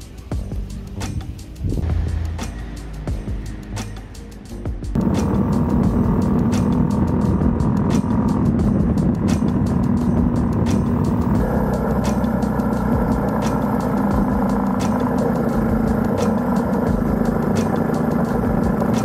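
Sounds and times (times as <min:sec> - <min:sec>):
music with steady beat: 0:00.0 - 0:19.0
motorcycle engine running: 0:04.7 - 0:19.0.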